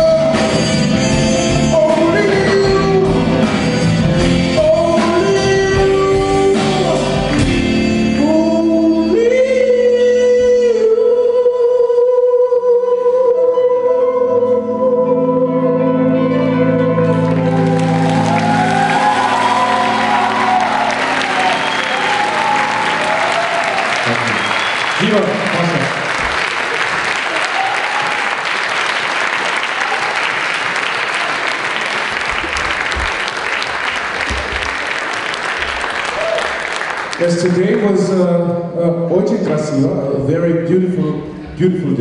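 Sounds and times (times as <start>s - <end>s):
audience applauding: 17.2s - 38.1s.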